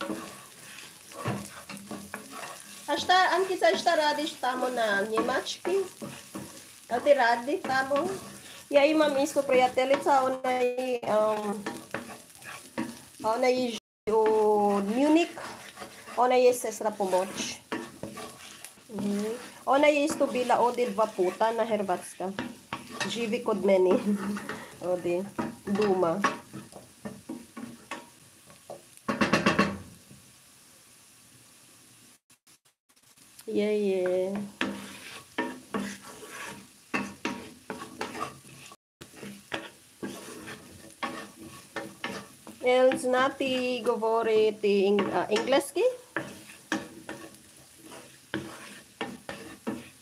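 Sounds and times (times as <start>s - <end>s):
spatula scraping frying potatoes: 0.0s - 30.3s, 32.4s - 50.0s.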